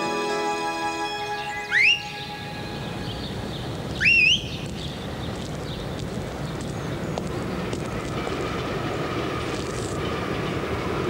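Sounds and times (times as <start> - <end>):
held music chord: 0.0 - 3.9
loud rising whistles: 0.0 - 4.5.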